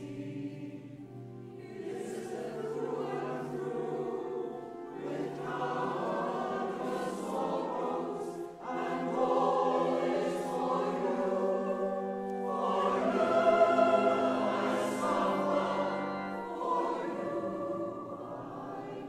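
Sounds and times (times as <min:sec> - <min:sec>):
choir singing sustained chords: 0:00.0 - 0:19.0.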